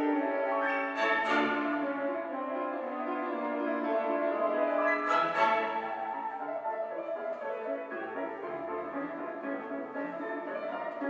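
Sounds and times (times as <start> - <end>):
horns: 0.0 - 6.4
orchestra playing: 0.0 - 11.0.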